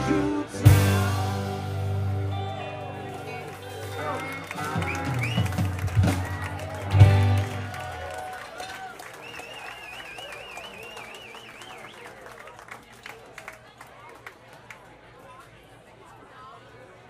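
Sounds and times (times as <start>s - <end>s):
rock band playing: 0.0s - 8.2s
crowd cheering and whooping: 3.3s - 12.3s.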